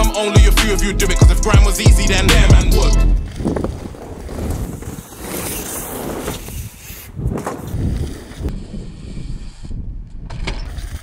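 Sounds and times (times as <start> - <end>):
wind rumble on microphone: 0.8 - 11.0
bike rolling over gravel: 1.5 - 8.6.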